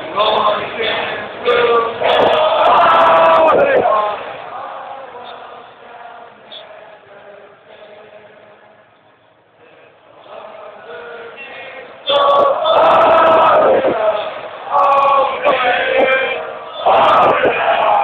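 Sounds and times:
stadium crowd singing in unison: 0:00.0 - 0:18.0.

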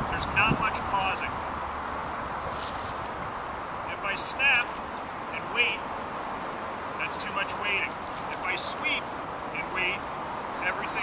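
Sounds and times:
steady background hiss: 0:00.0 - 0:11.0
bird chirping: 0:06.4 - 0:08.7.

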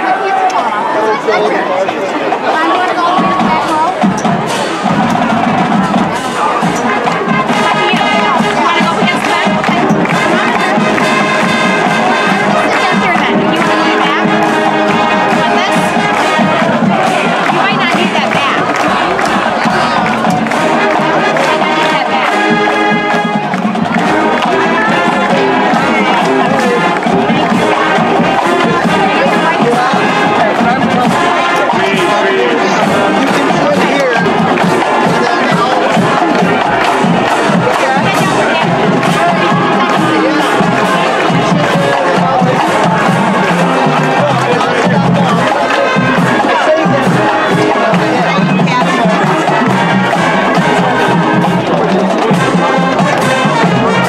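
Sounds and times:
marching band playing: 0:00.0 - 0:54.0.

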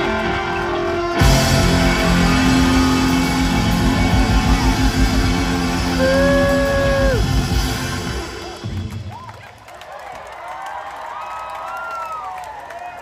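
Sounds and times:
live rock band playing: 0:00.0 - 0:09.0.

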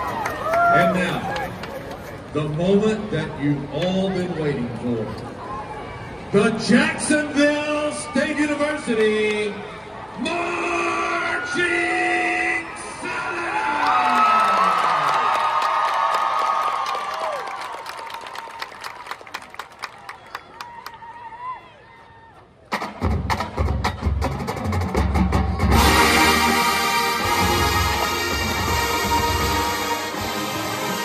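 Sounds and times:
stadium crowd cheering and clapping: 0:00.0 - 0:02.6, 0:07.9 - 0:23.6
marching band playing: 0:22.7 - 0:31.0.

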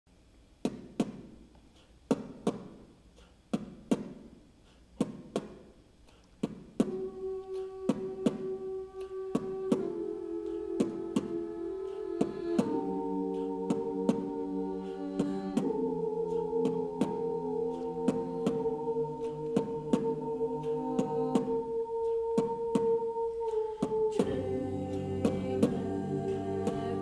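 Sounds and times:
vocal percussive hits: 0:02.1 - 0:27.0
voices singing sustained chord: 0:06.8 - 0:27.0.

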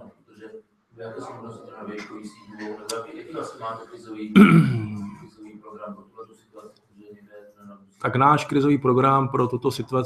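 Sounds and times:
man clearing his throat: 0:04.3 - 0:05.3.

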